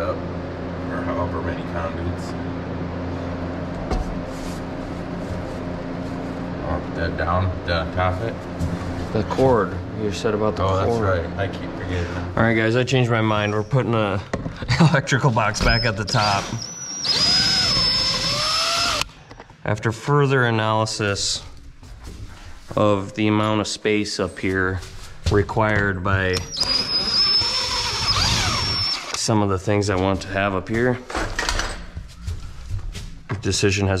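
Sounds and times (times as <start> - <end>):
steady machine hum: 0.0 - 31.1
cordless drill driving screw: 15.7 - 19.1, 26.4 - 29.2.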